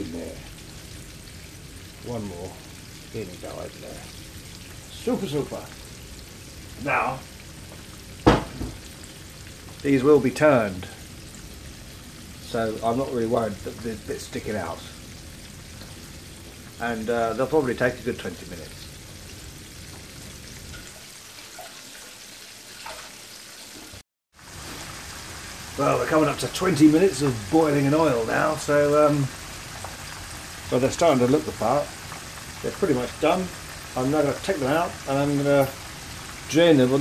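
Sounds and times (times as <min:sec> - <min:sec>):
chicken sizzling in a frying pan: 0:00.0 - 0:37.0
sharp thump: 0:08.2 - 0:08.8.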